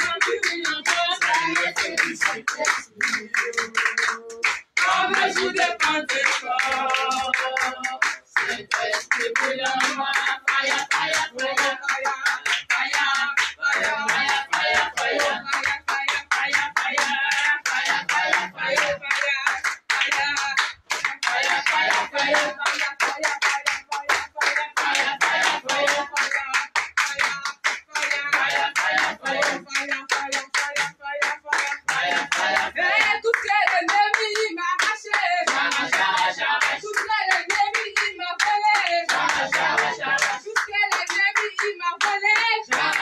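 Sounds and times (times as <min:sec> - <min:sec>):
congregation singing: 0:00.0 - 0:43.0
rhythmic hand-clapping: 0:00.0 - 0:43.0.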